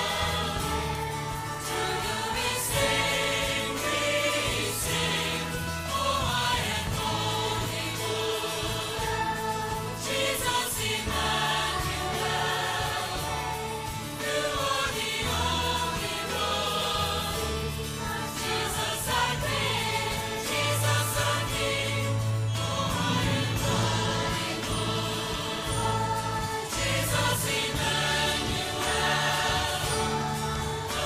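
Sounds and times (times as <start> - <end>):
children's choir singing: 0.0 - 31.0
instrumental bass notes: 21.5 - 29.0.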